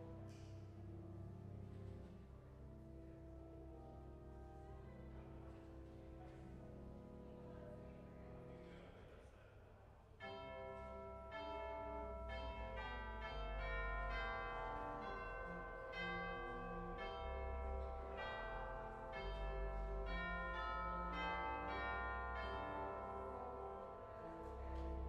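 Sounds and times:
pipe organ playing chords: 0.0s - 8.6s, 10.2s - 25.0s.

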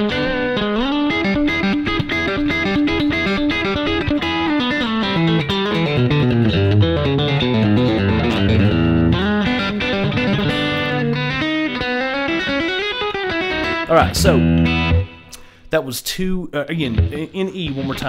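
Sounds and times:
electric guitar quick plucked notes: 0.0s - 15.6s.

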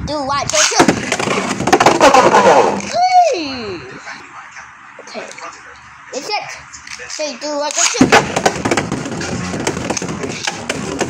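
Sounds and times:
person crying out: 2.8s - 4.0s.

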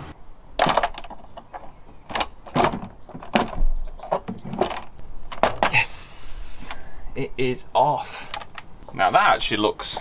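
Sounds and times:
hand tools clacking on engine parts: 8.1s - 10.0s.

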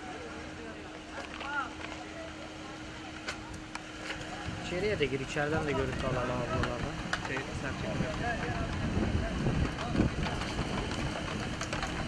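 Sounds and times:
faint voices talking: 0.0s - 12.0s
outdoor low rumble: 0.0s - 12.0s.

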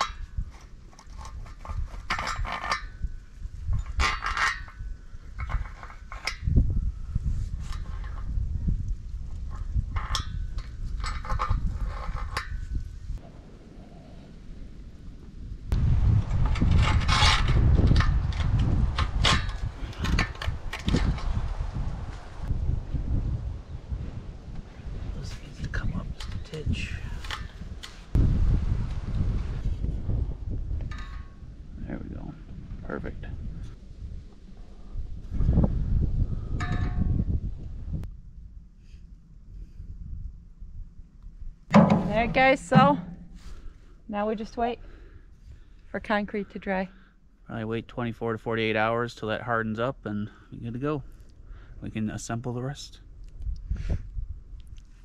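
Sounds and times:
steel rails knocking and scraping: 0.0s - 3.1s, 3.7s - 6.5s, 41.7s - 43.5s
low rumble: 12.8s - 26.1s, 26.9s - 44.1s.

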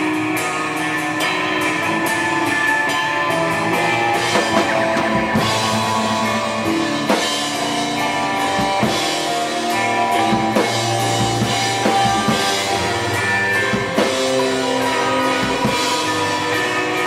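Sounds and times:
drum kit heavy hits: 0.0s - 17.0s
sustained guitar and bass: 0.0s - 17.0s.

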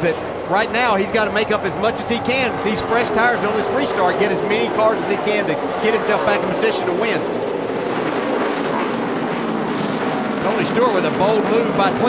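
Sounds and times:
race car engines roaring: 0.0s - 12.0s.

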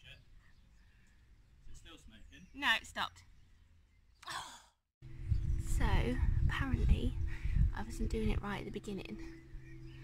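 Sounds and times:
woman sighing: 4.2s - 4.8s
wind rumble on microphone: 5.0s - 10.0s
woman speaking: 7.8s - 9.3s.

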